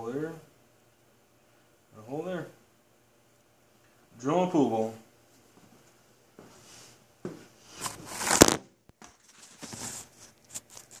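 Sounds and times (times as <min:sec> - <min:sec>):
rustling and scraping handling noises: 0:05.3 - 0:11.0.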